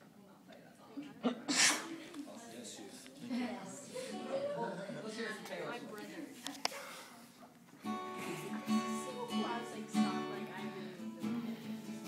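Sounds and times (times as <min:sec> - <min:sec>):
quiet voices: 0:00.0 - 0:12.0.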